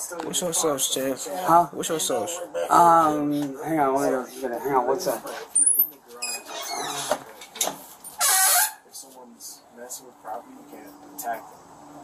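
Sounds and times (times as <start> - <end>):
door hinge squeal: 5.6 - 7.2, 8.2 - 8.8.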